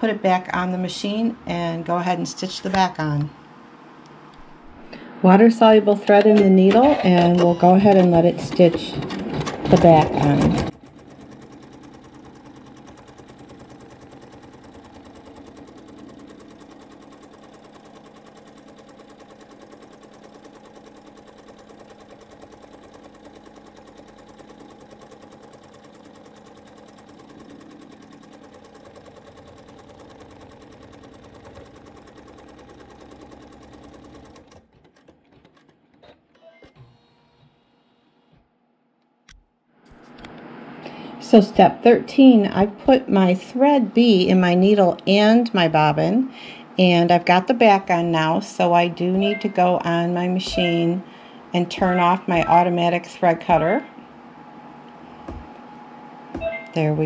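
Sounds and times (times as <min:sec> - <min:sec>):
embroidery machine stitching: 0:05.8 - 0:37.4, 0:49.0 - 0:53.8.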